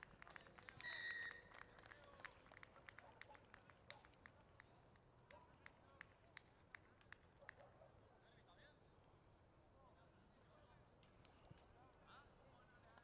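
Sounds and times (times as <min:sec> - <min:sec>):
referee's whistle: 0:00.8 - 0:01.4.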